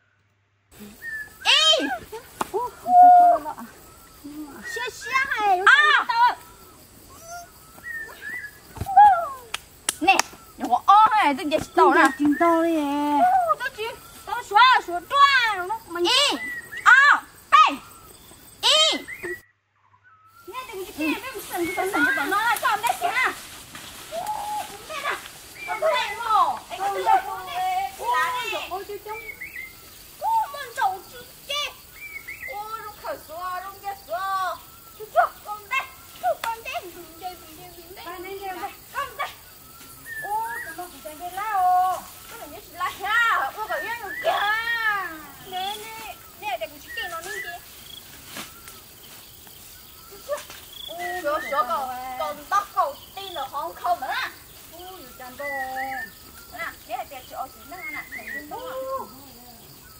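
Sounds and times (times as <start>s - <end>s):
soft voices chattering: 0.7s - 19.4s, 20.4s - 59.9s
young women calling out: 0.8s - 18.0s, 18.6s - 19.4s, 24.1s - 39.5s, 40.1s - 47.7s, 50.1s - 59.7s
woman speaking animatedly: 4.4s - 6.4s, 10.0s - 17.8s, 24.7s - 29.3s, 40.2s - 47.6s.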